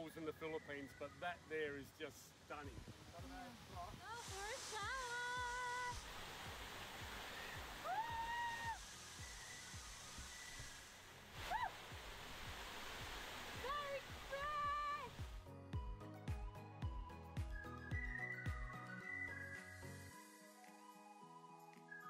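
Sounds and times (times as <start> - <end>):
waterfall splashing: 2.4 - 15.4
music with low beat: 2.7 - 7.8, 8.8 - 11.0, 11.9 - 20.8.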